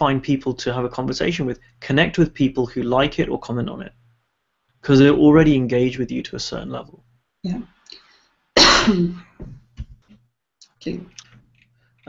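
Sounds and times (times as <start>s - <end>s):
person coughing: 8.6s - 9.3s.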